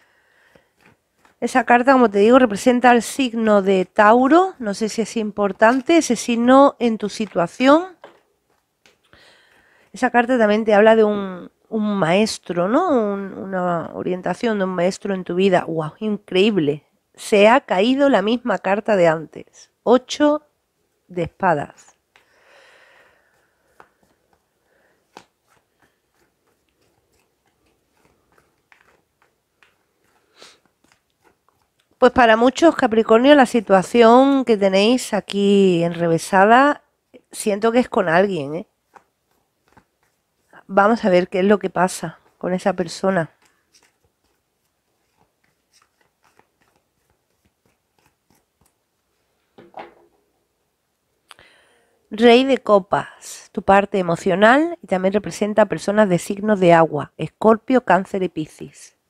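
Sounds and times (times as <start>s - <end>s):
cards shuffling rustle: 0.4s - 3.5s, 6.9s - 11.0s, 21.8s - 34.0s, 38.4s - 48.9s.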